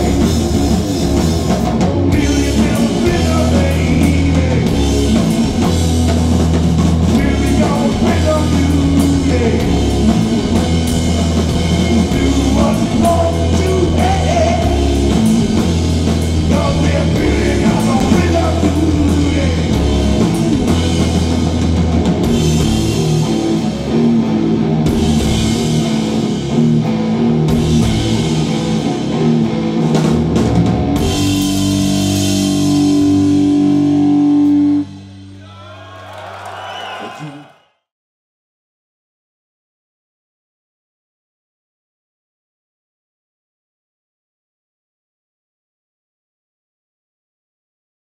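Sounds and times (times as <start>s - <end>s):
distorted electric guitar: 0.0s - 35.3s
bass guitar: 0.0s - 36.4s
pounding drum kit: 0.0s - 37.5s.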